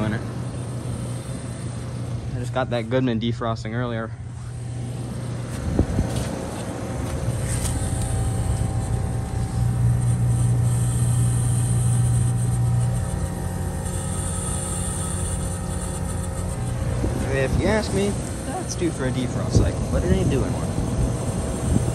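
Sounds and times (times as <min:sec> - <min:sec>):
heat pump compressor hum: 0:00.0 - 0:21.9.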